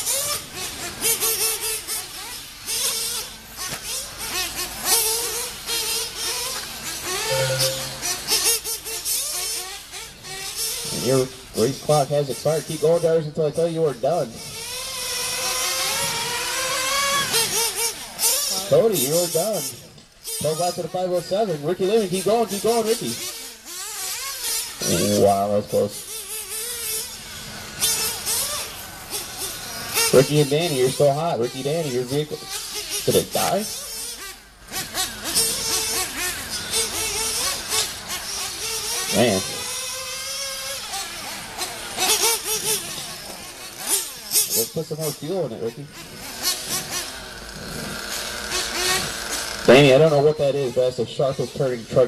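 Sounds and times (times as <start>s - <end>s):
small nitro engine revving: 0.0s - 52.0s
engine throttle blips: 7.2s - 8.5s.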